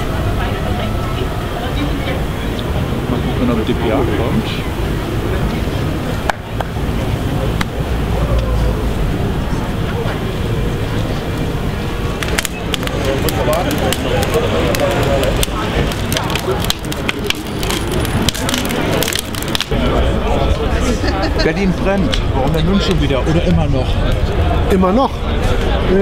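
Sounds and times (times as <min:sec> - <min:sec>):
wood fire crackling: 0:00.0 - 0:20.4
sharp pops of fire: 0:12.1 - 0:19.8.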